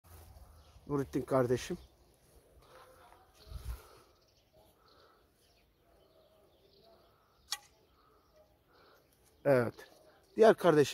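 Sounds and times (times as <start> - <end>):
sharp click: 7.4 - 7.8.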